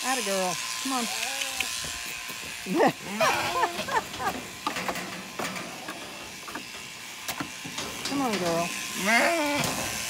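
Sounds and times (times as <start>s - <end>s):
sheep bleating: 8.9s - 9.7s.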